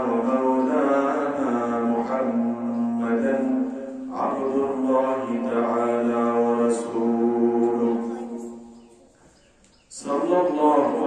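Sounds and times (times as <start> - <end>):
man chanting into a microphone: 0.0 - 8.7, 9.9 - 11.0.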